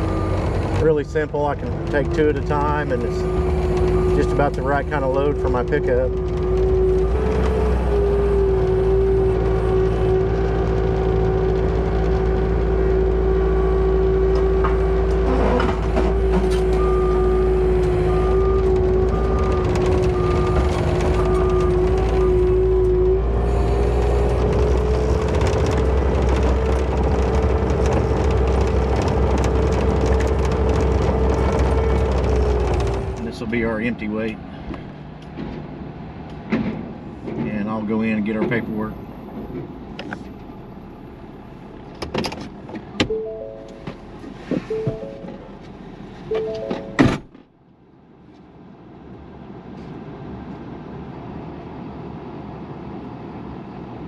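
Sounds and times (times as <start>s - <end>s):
engine running: 0.0s - 47.3s
evenly spaced beeps: 43.1s - 43.8s, 44.7s - 45.6s, 46.3s - 47.0s.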